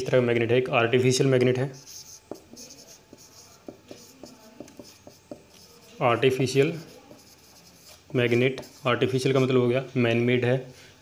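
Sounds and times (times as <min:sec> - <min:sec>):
marker writing on whiteboard: 0:01.4 - 0:09.6.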